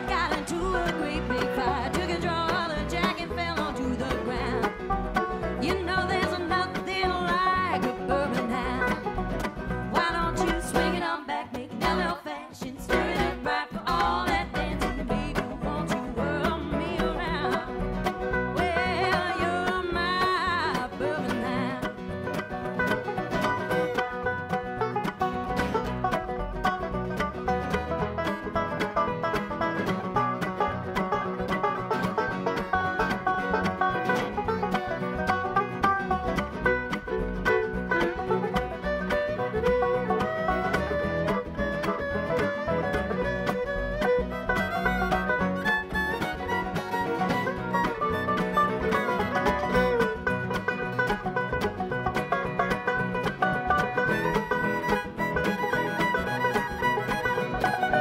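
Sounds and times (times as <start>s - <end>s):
banjo picking fast runs: 0.0s - 58.0s
string instruments playing: 0.0s - 58.0s.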